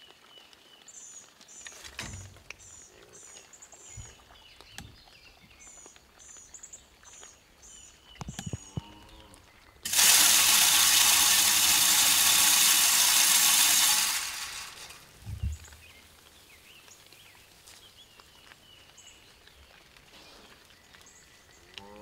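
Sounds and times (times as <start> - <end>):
feeder motor flinging corn: 9.8 - 15.8.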